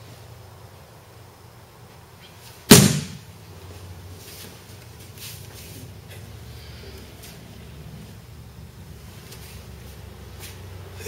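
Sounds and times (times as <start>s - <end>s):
body slapping a mat: 2.7s - 3.2s.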